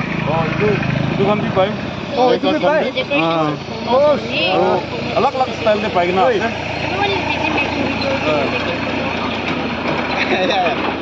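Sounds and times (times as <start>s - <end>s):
steady background noise: 0.0s - 11.0s
people talking: 0.2s - 11.0s.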